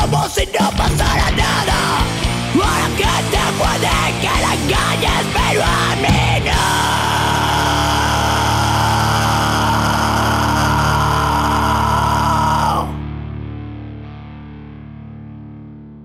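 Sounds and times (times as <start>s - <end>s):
distorted electric guitar chord: 1.3s - 16.0s.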